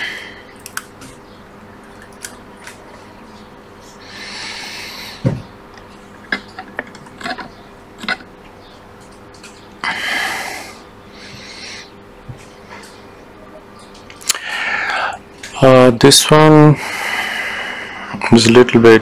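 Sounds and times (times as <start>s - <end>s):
heavy breathing: 0.0s - 0.6s, 3.8s - 5.3s, 9.8s - 12.0s, 14.3s - 15.3s, 16.7s - 18.2s
faint steady hum: 0.0s - 19.0s.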